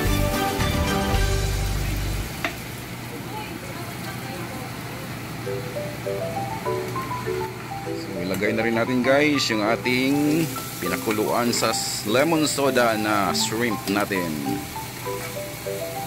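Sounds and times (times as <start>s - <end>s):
background music with bass: 0.0s - 2.3s
garlic sizzling in butter: 5.5s - 16.0s.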